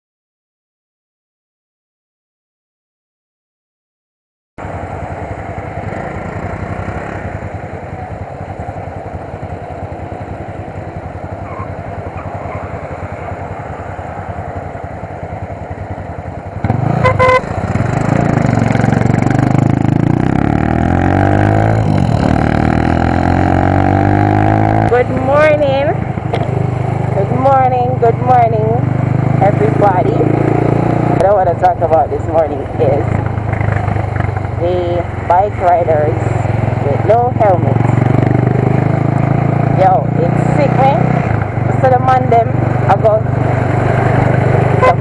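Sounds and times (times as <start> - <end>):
motorcycle engine revving: 4.6 - 45.0
wind and road noise: 4.6 - 45.0.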